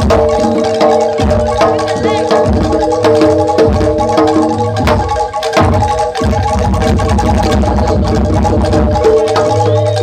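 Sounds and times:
metal percussion ringing: 0.0 - 10.0
rapid low drumming: 0.0 - 10.0.

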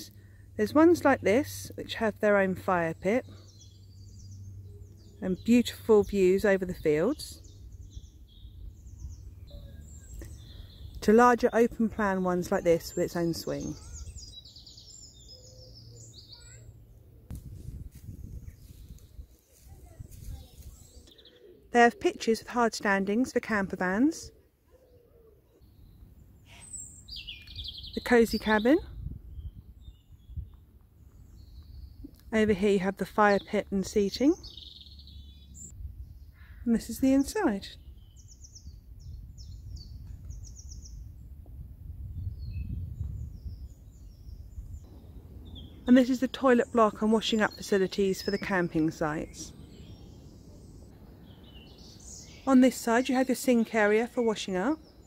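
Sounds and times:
songbirds chirping: 0.0 - 55.0
steady low rumble: 41.0 - 46.8
low outdoor rumble: 44.4 - 48.0.

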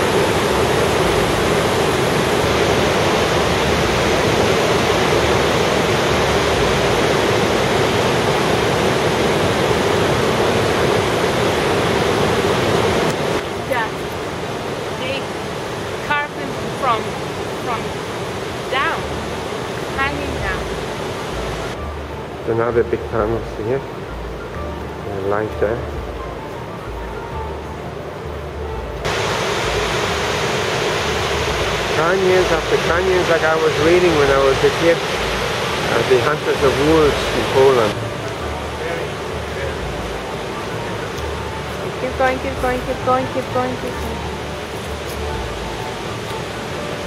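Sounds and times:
river rushing through gorge: 0.0 - 22.6, 29.0 - 47.0
whitewater rapids roaring: 0.0 - 23.3, 29.0 - 47.0
person's voice: 13.7 - 14.0, 42.0 - 44.2.

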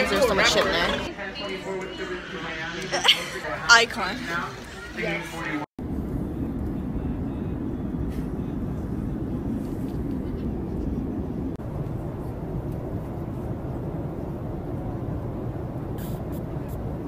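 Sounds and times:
airliner cabin engine rumble: 1.0 - 17.0.

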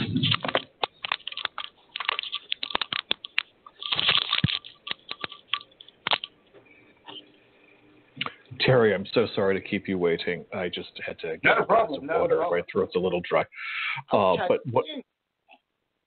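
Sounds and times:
phone handling clicks and rustles: 0.0 - 7.2.

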